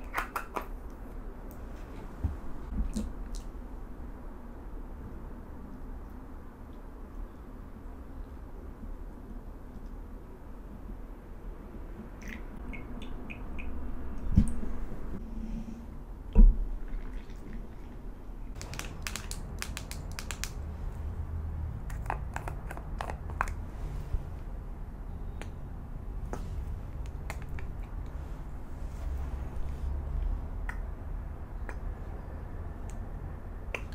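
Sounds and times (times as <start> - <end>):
sharp clicks and taps: 18.6 - 20.6.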